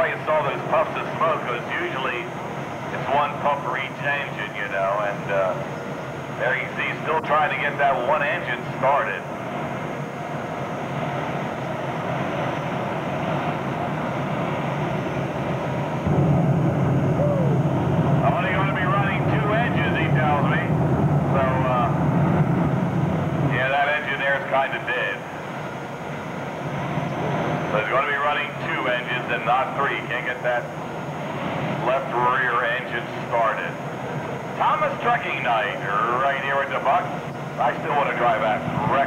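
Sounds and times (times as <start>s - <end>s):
tractor engines running: 0.0s - 16.0s, 17.2s - 39.0s.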